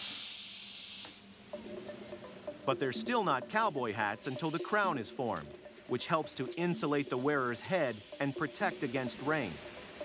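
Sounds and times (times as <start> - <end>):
steam hissing: 0.0 - 5.2, 5.9 - 10.0
background music: 1.4 - 10.0.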